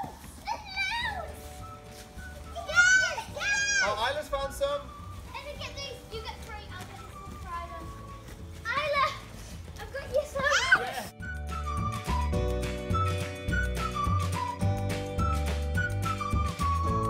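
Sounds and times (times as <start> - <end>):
children calling and squealing: 0.0 - 1.6, 2.2 - 4.2, 5.0 - 11.2.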